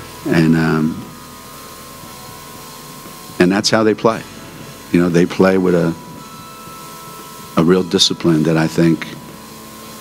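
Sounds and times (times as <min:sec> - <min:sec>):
steady hiss and hum: 0:00.0 - 0:10.0.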